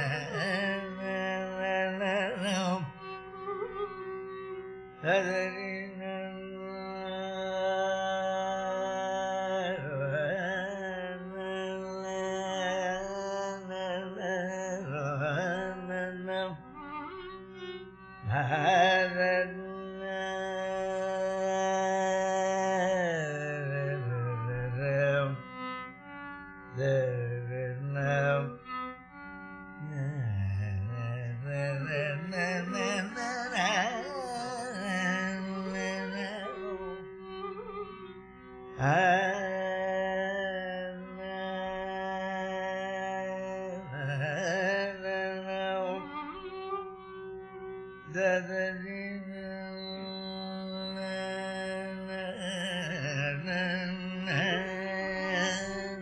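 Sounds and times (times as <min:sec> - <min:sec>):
man singing ornamented phrases: 0:00.0 - 0:03.0, 0:05.0 - 0:16.6, 0:18.2 - 0:25.5, 0:26.7 - 0:28.6, 0:29.8 - 0:38.0, 0:38.8 - 0:46.7, 0:48.0 - 0:56.0
tambura drone: 0:29.8 - 0:40.2.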